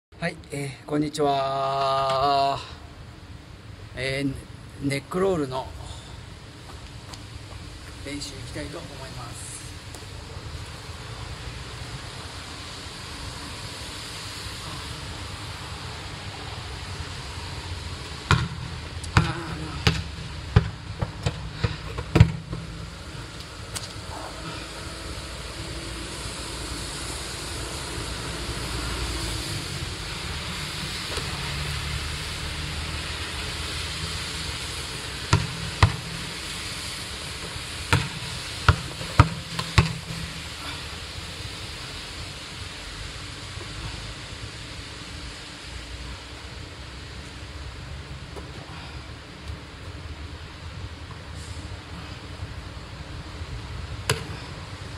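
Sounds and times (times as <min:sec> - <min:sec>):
steady rushing background noise: 0:00.1 - 0:54.9
football hitting tiled paving: 0:18.1 - 0:22.8, 0:35.2 - 0:36.3, 0:37.4 - 0:40.5, 0:54.1 - 0:54.4.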